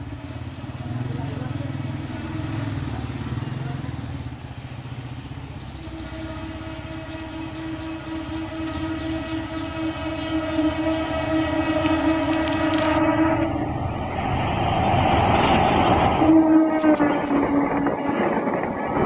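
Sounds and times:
locomotive engine rumble: 0.0 - 19.0
train horn long blast: 5.8 - 13.9, 16.1 - 19.0.

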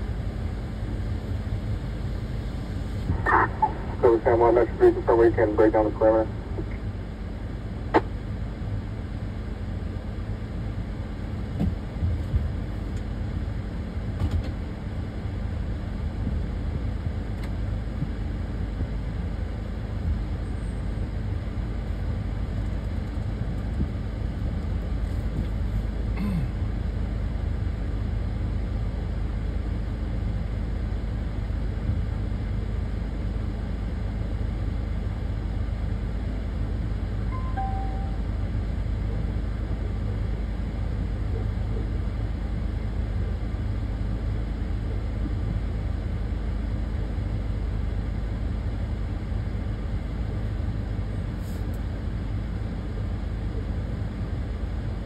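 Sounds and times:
steady low rumble: 0.0 - 55.0
two-note chirp: 37.3 - 38.3.

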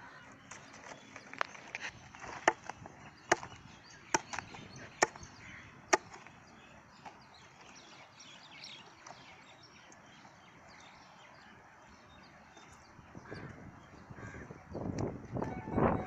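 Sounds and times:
blade chopping on wooden block: 2.2 - 3.6.

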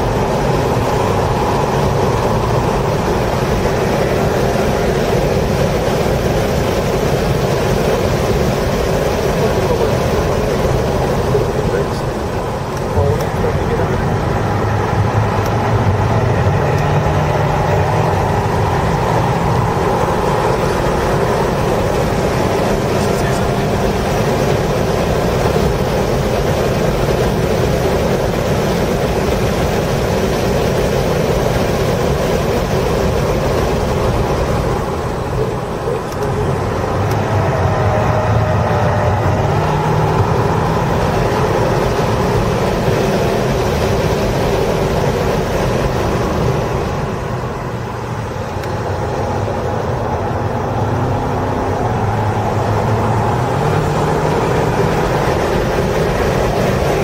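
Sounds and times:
car engine at high revs: 0.0 - 57.0
road and wind noise: 0.0 - 57.0.

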